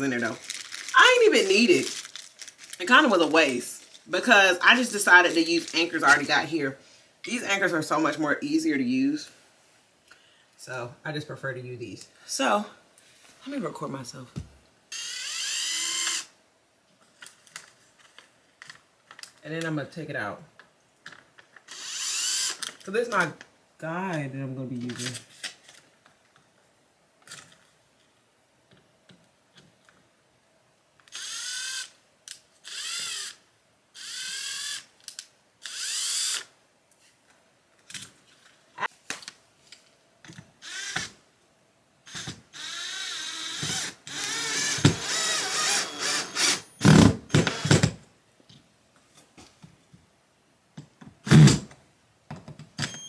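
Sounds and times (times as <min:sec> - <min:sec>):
power drill drilling: 0:15.0 - 0:16.3, 0:21.7 - 0:22.6, 0:31.1 - 0:31.9, 0:32.6 - 0:33.4, 0:34.0 - 0:34.8, 0:35.6 - 0:36.5, 0:40.6 - 0:41.1, 0:42.1 - 0:47.9.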